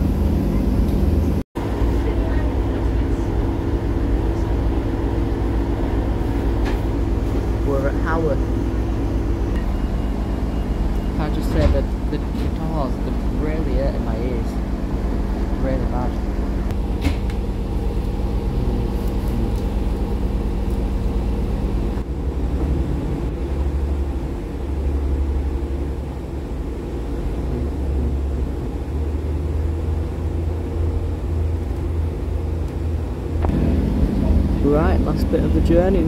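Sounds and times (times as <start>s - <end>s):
diesel railcar engine drone: 0.0s - 36.0s.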